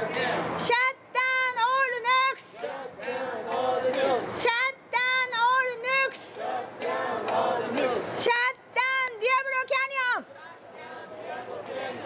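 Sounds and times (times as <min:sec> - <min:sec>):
group of people singing: 0:00.0 - 0:00.7, 0:02.4 - 0:04.6, 0:06.0 - 0:08.3, 0:10.3 - 0:12.0.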